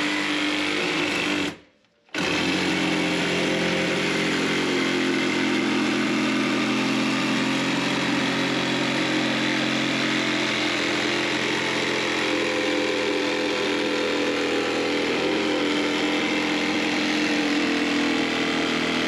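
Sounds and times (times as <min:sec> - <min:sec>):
reciprocating saw cutting: 0:00.0 - 0:19.0.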